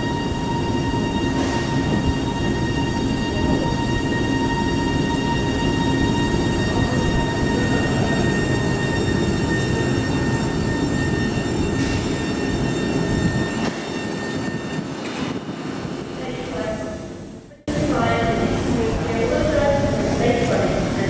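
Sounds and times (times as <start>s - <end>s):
electric train whining: 0.0s - 21.0s
train low rumble: 0.0s - 21.0s.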